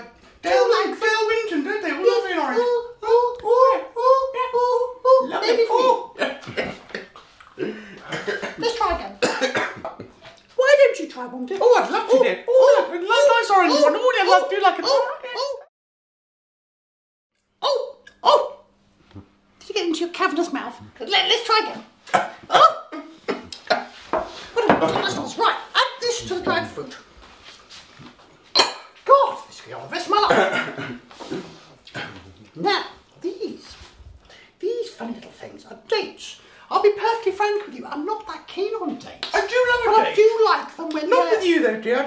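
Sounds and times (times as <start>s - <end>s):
person coughing: 7.6s - 10.0s, 30.2s - 32.3s.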